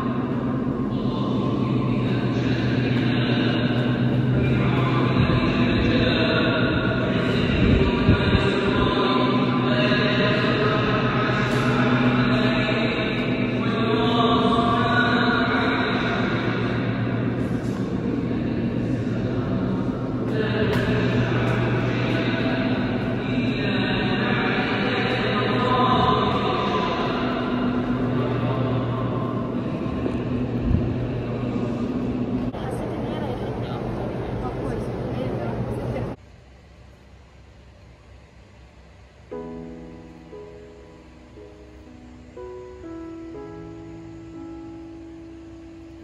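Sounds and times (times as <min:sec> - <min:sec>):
person chanting long notes: 0:00.0 - 0:35.3
indoor background noise: 0:00.0 - 0:46.0
steady low drone: 0:00.0 - 0:46.0
steady low hum: 0:00.0 - 0:46.0.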